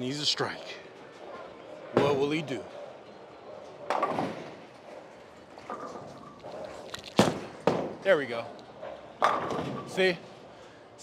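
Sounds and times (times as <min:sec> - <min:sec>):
bowling alley clatter: 0:09.2 - 0:10.0.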